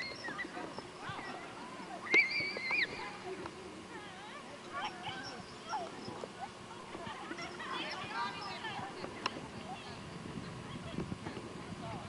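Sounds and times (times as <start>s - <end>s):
distant children shouting and squealing: 0.0s - 3.3s
outdoor background hiss: 0.0s - 12.0s.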